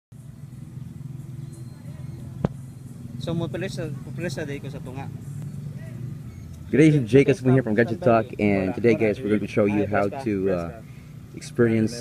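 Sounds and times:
engine humming: 0.1s - 12.0s
faint voices: 1.2s - 12.0s.

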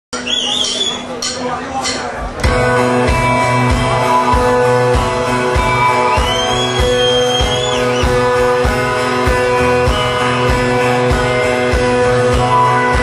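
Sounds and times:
rock band playing: 2.2s - 13.0s.

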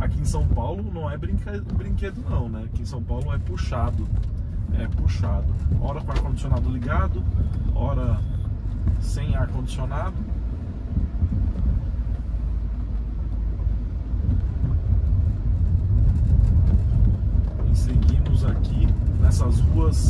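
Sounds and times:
road and tyre rumble: 0.0s - 20.0s.

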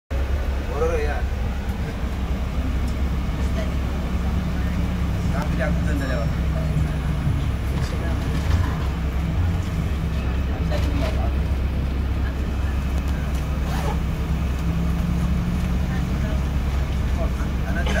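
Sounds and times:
bus engine humming: 0.1s - 18.0s
voices talking: 0.5s - 18.0s.

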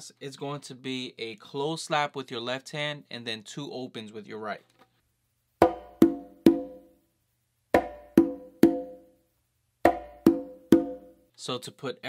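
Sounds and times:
conga slap and open tones: 5.6s - 6.9s, 7.7s - 9.1s, 9.8s - 11.2s.

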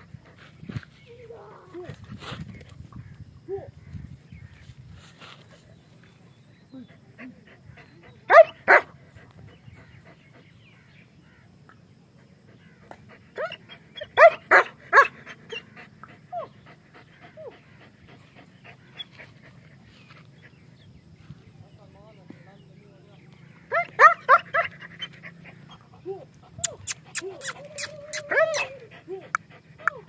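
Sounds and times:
dog barking: 8.3s - 8.9s, 13.4s - 15.2s, 23.7s - 24.7s.

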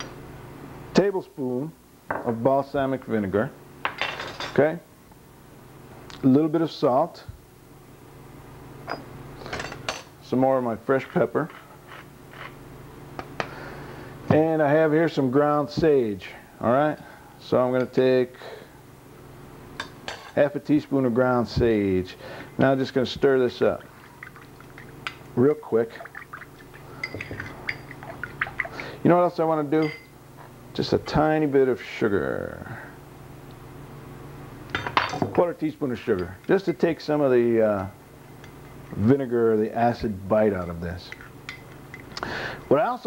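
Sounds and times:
steady low hum: 0.0s - 43.0s
spoon clinking in ceramic bowl: 27.0s - 28.6s.

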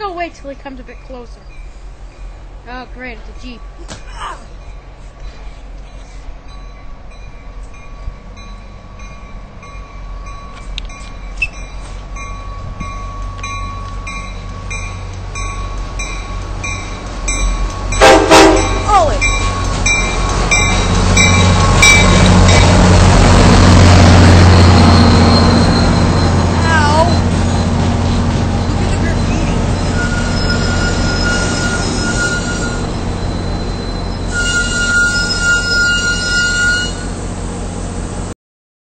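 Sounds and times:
train rumbling past: 0.0s - 38.3s
train horn blast: 17.9s - 19.2s, 34.3s - 37.2s.

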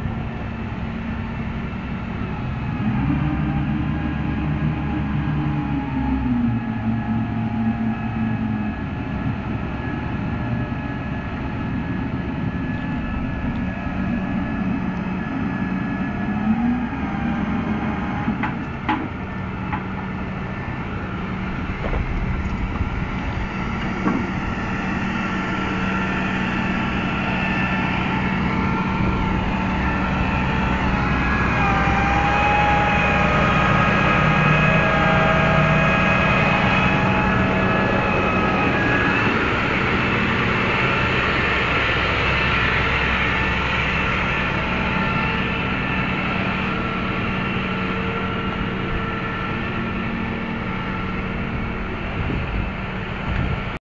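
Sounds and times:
hydraulics working: 0.0s - 53.8s
multi-tone whine: 0.0s - 53.8s
truck engine running: 0.0s - 53.8s.

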